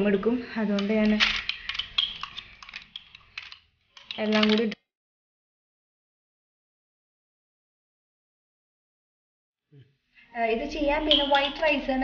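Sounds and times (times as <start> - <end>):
metal spoon scraping glass cup: 1.5 - 3.0, 11.0 - 11.9.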